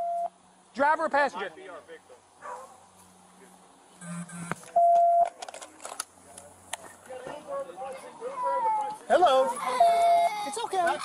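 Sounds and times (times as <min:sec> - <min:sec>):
electronic beep: 0:00.0 - 0:00.3, 0:04.0 - 0:05.3.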